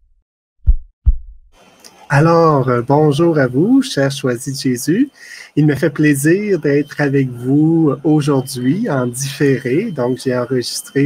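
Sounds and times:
heartbeat thumps: 0.6 - 1.5.

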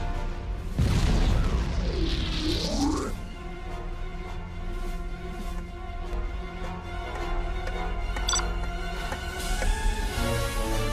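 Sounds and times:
orchestral music: 0.0 - 10.9.

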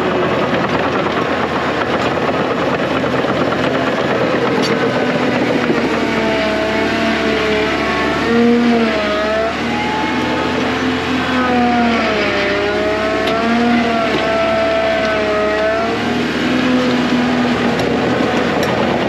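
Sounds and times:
machine clatter: 0.0 - 7.6, 13.1 - 19.0
loader diesel engine working hard: 0.0 - 19.0.

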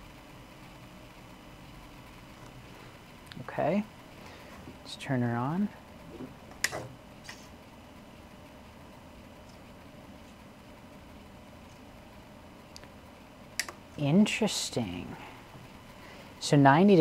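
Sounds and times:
power switch clicking: 13.6 - 13.8.

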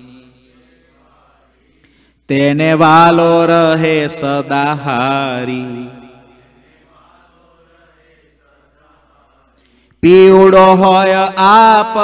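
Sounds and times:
man chanting: 2.3 - 6.3, 10.0 - 12.0.

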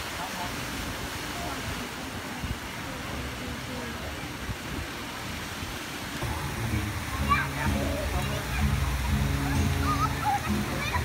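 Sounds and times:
fountain jets splashing: 0.0 - 11.0
music with low notes: 6.2 - 11.0
people's voices: 6.2 - 11.0.

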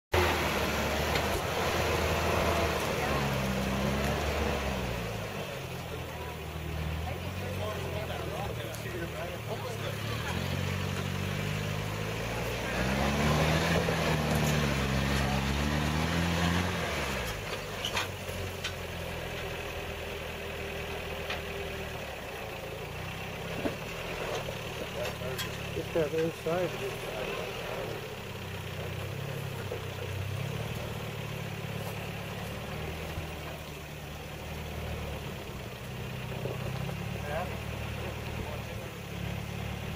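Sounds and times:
suv engine revving: 0.1 - 39.9.

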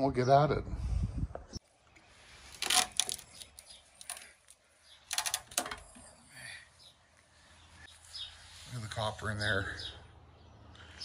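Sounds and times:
metal tools clinking on steel: 2.6 - 6.0.

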